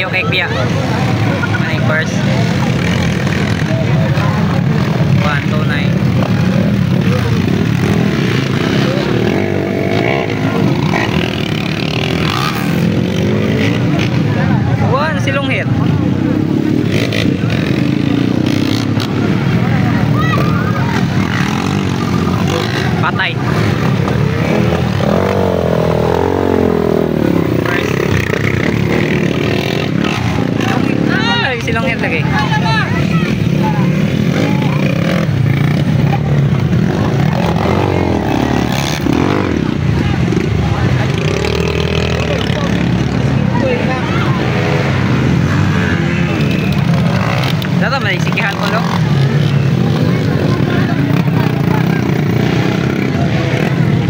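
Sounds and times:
crowd voices: 0.0s - 54.0s
dirt bike engines revving: 0.0s - 54.0s.

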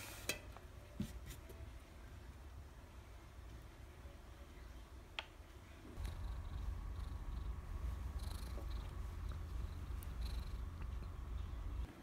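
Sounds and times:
cat purring: 5.9s - 11.9s.

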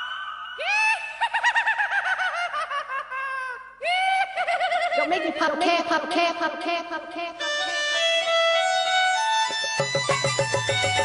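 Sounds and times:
music with warbling melody: 7.2s - 11.0s.

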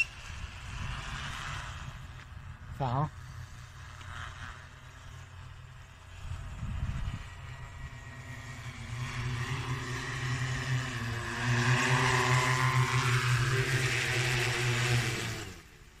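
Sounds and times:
drone rotors humming: 0.0s - 16.0s.

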